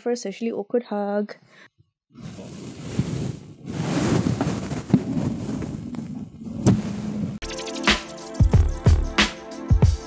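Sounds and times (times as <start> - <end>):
microphone handling noise: 2.2 - 7.4.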